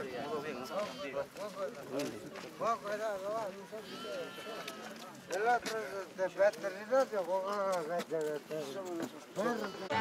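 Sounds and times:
people talking while walking: 0.0 - 10.0.

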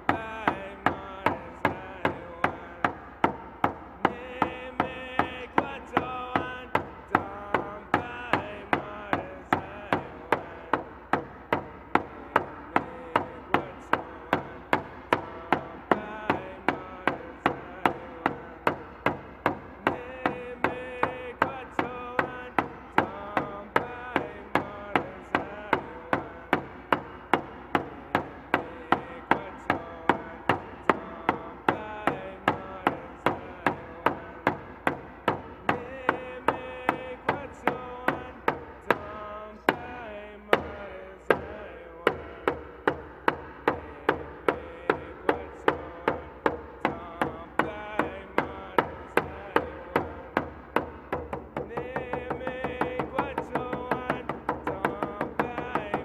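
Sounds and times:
man singing: 0.0 - 56.0
hand drum beats: 42.1 - 56.0.

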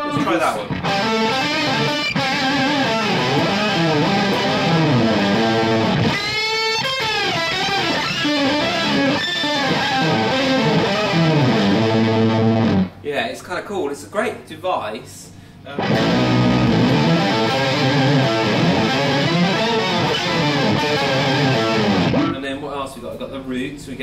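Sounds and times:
pitch-shifted electric guitar: 0.0 - 13.0, 15.7 - 22.4.

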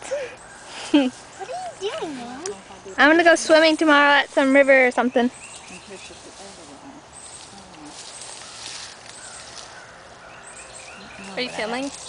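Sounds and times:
leaves and brush rustling: 0.1 - 12.0
insects chirping: 0.4 - 12.0
footsteps through undergrowth: 0.5 - 12.0.

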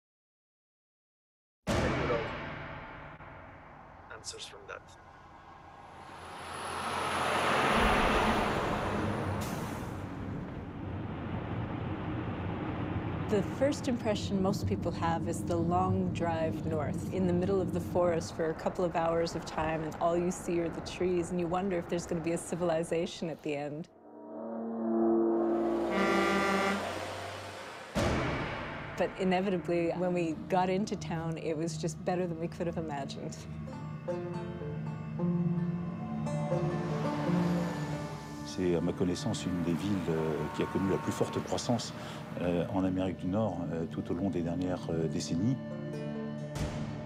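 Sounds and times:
low boom: 1.7 - 6.7, 7.8 - 18.3, 25.4 - 30.9
low rumble: 1.7 - 23.1, 23.9 - 33.6
road traffic noise: 3.8 - 23.5, 25.3 - 44.6
deep horn-like held chord: 24.0 - 29.0, 33.5 - 43.6.

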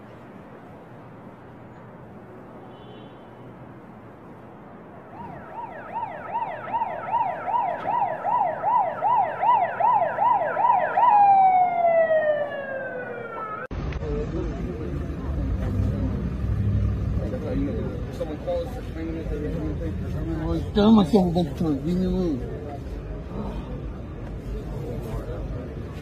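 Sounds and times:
street noise rumble: 0.0 - 26.0
emergency siren yelping: 5.1 - 13.7.

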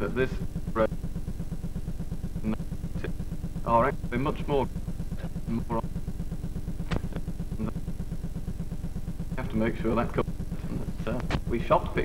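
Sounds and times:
low pulsing hum: 0.0 - 12.0
man's voice syllable: 5.5 - 5.8.

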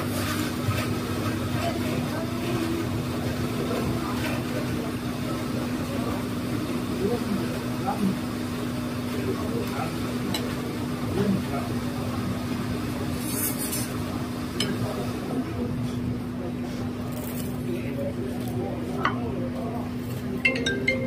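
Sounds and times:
low machine hum: 0.0 - 21.0
background chatter of voices: 0.4 - 21.0.

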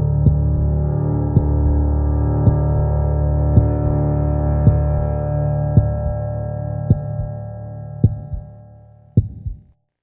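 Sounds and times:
low held music chord: 0.0 - 9.4
heartbeat thumps: 0.2 - 0.8, 1.4 - 1.8, 2.4 - 2.9, 3.6 - 4.0, 4.6 - 5.1, 5.8 - 6.2, 6.9 - 7.4, 8.0 - 8.6, 9.2 - 9.8.

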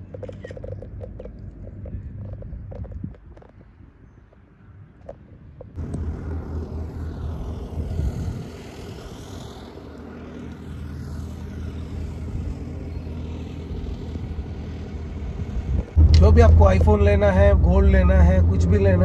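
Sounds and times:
car engine and road noise: 0.0 - 19.0
tyre and traffic rush: 0.0 - 19.0.

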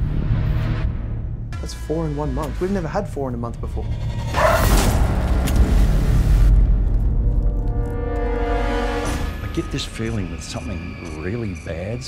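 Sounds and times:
deep rumble: 3.1 - 10.6.

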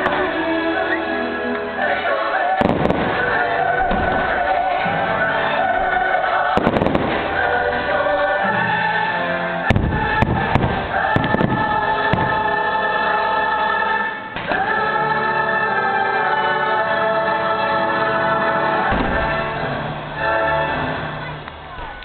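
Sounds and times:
choir singing held notes: 0.0 - 22.0
orchestral music: 0.0 - 22.0
fireworks bangs and cracks: 2.5 - 8.0, 9.7 - 12.6, 14.3 - 14.8, 18.9 - 20.2.

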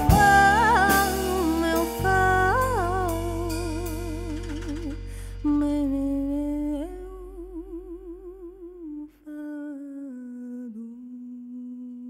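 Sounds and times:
woman singing wordless melody: 0.0 - 12.0.

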